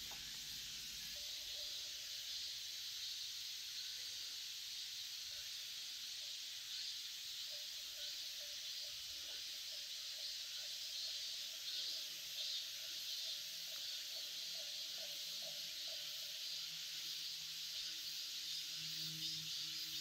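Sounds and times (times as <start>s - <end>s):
insects buzzing: 0.0s - 20.0s.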